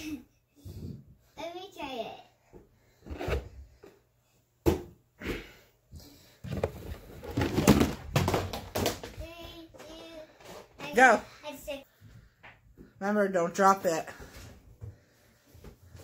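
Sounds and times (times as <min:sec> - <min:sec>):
rustling and shuffling: 0:05.9 - 0:13.0.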